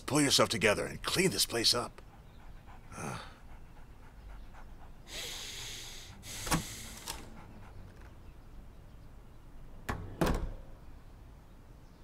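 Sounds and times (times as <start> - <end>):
door opening and shutting: 6.4 - 7.3, 9.9 - 10.7.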